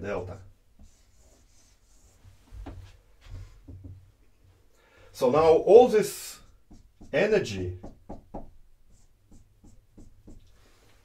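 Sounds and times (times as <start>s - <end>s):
marker writing on whiteboard: 0.8s - 4.0s, 6.1s - 10.6s.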